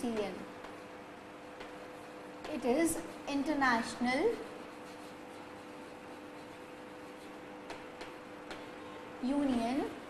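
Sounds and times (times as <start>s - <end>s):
chalk tapping on blackboard: 0.0s - 3.3s, 4.3s - 9.0s
faint steady hum: 0.0s - 10.0s.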